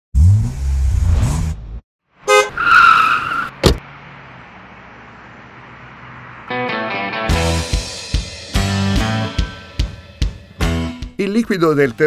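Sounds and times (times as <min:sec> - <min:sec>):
car horn blast: 0:02.2 - 0:02.6.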